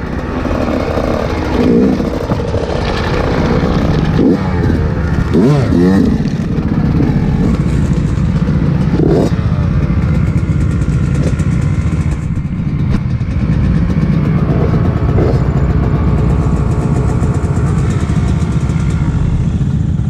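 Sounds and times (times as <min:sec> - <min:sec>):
dirt bike engine idling: 0:00.0 - 0:20.0
other bikes running nearby: 0:00.0 - 0:20.0.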